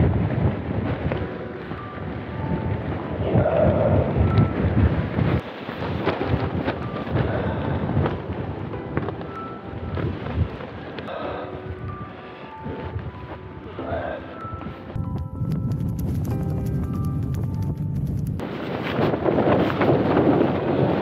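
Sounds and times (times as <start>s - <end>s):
gusty wind on microphone: 0.0s - 13.8s, 14.4s - 21.0s.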